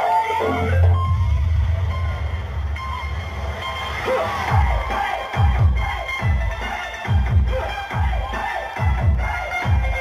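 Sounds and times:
dance music over sound system: 0.0 - 10.0
deep kick-drum beats: 0.7 - 3.0, 4.4 - 10.0.

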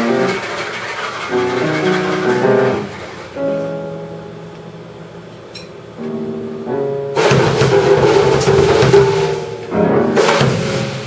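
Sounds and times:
drumming: 0.0 - 3.3, 7.1 - 11.0
held melody notes: 1.3 - 10.5.

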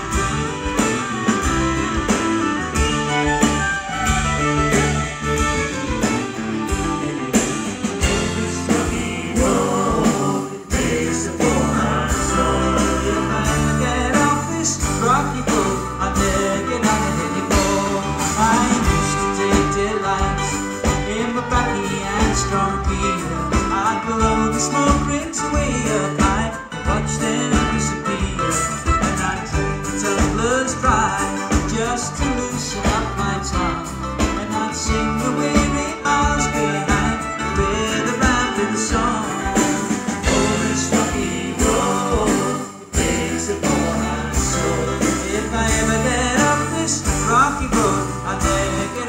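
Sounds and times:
drums: 0.0 - 49.0
electric bass guitar: 0.0 - 49.0
folk-rock band playing: 0.0 - 49.0.

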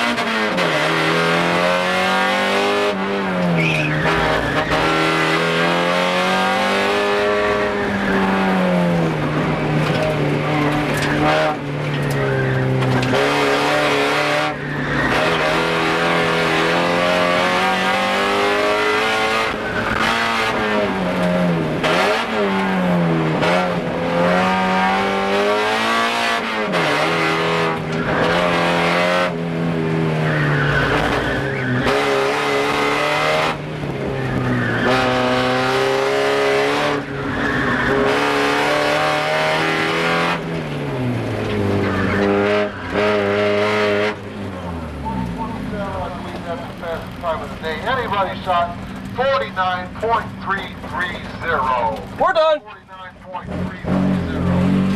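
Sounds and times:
car engine revving: 0.0 - 54.9
tyres squealing: 3.5 - 5.3, 36.4 - 38.6.

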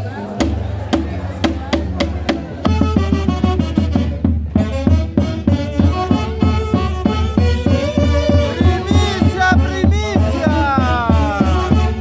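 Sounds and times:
bass drum beat: 0.4 - 12.0
saxophone section melody: 2.6 - 12.0.

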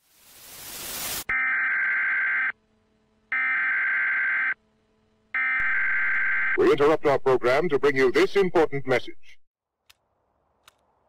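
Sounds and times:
static hiss: 0.0 - 1.3.

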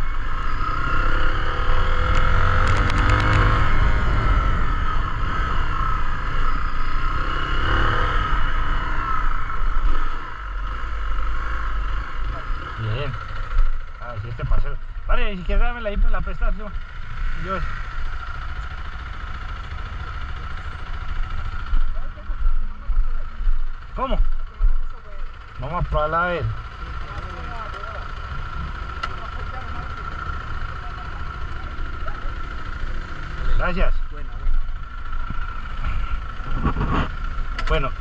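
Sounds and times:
motorcycle engine idling: 0.0 - 38.0.

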